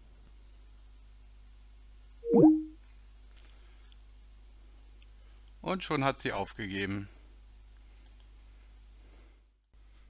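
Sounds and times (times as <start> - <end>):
low electrical hum: 0.0 - 10.0
faint clicks: 7.7 - 8.4.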